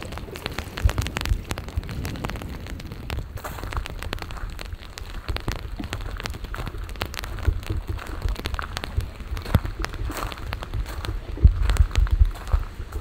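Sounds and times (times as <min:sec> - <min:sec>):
rain pattering: 0:00.0 - 0:13.0
steady low rumble: 0:00.0 - 0:13.0.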